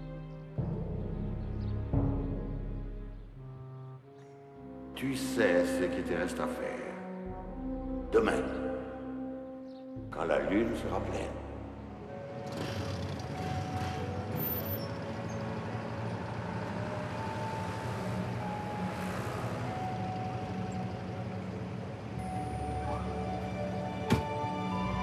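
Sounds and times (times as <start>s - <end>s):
music with long held notes: 0.0s - 25.0s
cars passing: 11.9s - 25.0s.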